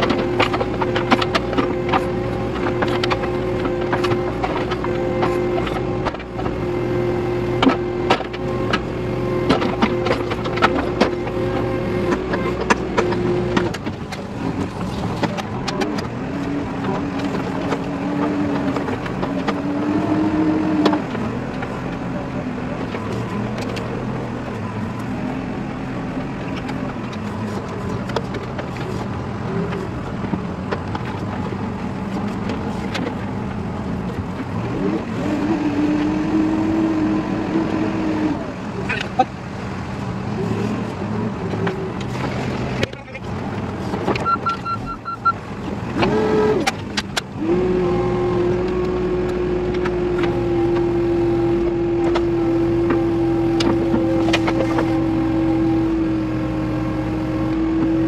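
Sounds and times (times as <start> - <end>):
diesel engine running: 0.0 - 58.0.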